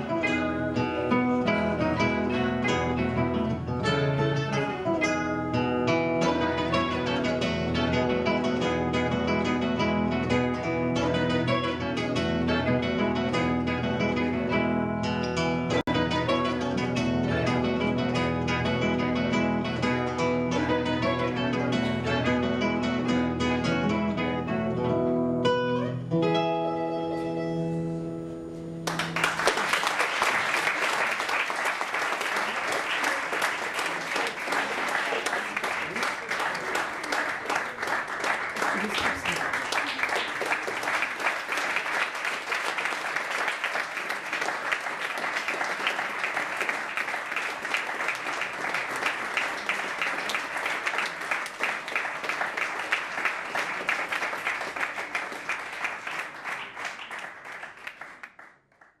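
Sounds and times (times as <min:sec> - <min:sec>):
audience applauding: 0:28.8 - 0:59.0.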